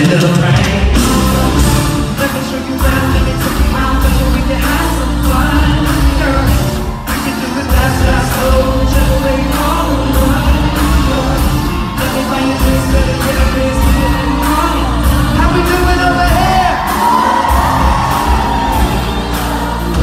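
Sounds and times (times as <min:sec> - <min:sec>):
person singing: 0:00.0 - 0:20.0
steady drum beat: 0:00.0 - 0:20.0.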